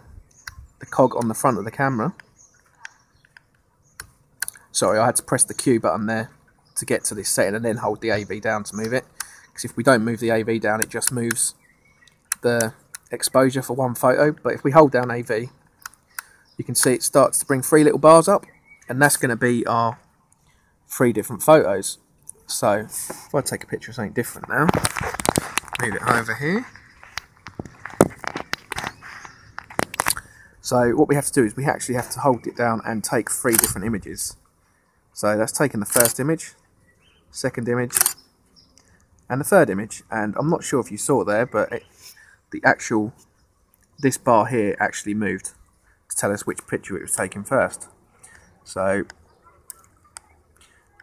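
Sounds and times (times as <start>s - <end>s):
camera handling clicks and knocks: 24.7s - 30.2s.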